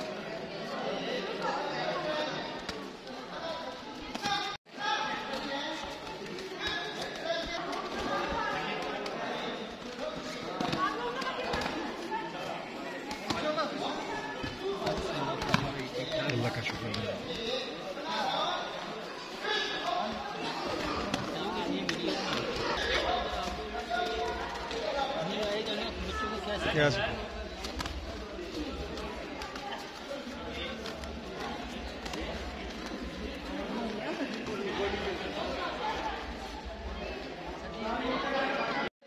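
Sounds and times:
crowd chattering in a hall: 0.0s - 39.0s.

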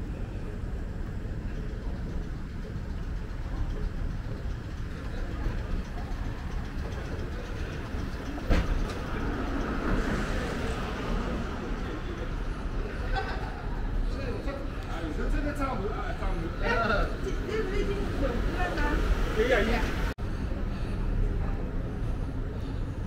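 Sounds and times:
moving walkway rumbling: 0.0s - 23.0s.

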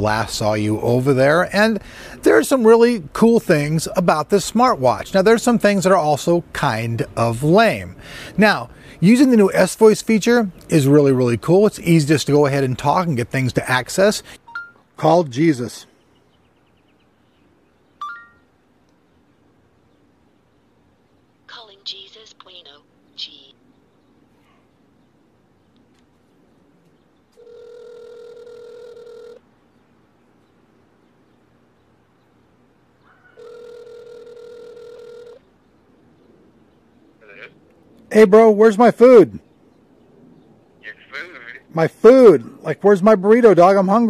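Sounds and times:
phone ringback tone: 14.4s - 14.8s, 18.0s - 18.5s, 27.4s - 29.4s, 33.4s - 35.4s.

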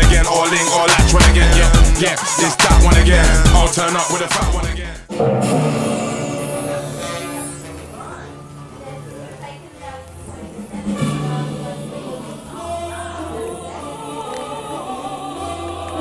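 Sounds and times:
slow low bass line: 2.8s - 3.7s
background music with sustained tones: 5.1s - 16.0s.

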